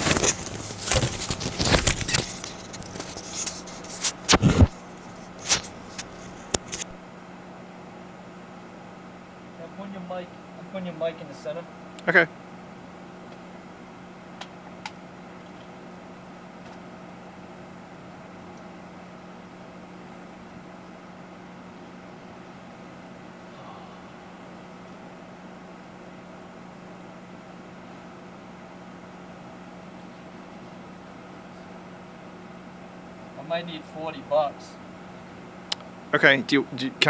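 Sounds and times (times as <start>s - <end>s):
low machine hum: 0.0s - 37.0s.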